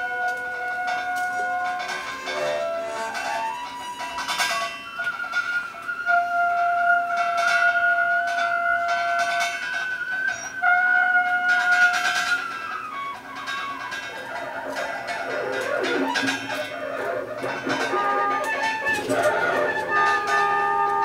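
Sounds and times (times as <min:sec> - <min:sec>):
cymbal and percussion strikes: 0:00.0 - 0:21.0
trumpet: 0:00.0 - 0:21.0
tenor saxophone: 0:14.6 - 0:21.0.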